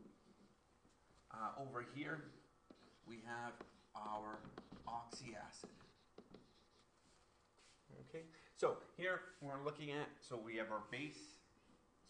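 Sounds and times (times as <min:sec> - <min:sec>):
stylus scratching on tablet: 0:02.0 - 0:07.8.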